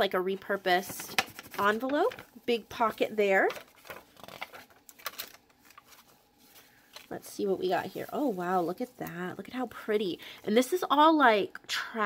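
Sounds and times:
paper pages turning: 0.5s - 9.1s.

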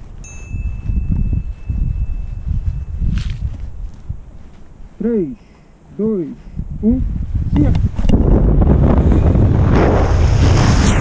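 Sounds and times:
wind buffeting microphone: 0.0s - 5.2s, 5.8s - 11.0s
bell-like chime ringing: 0.2s - 3.1s.

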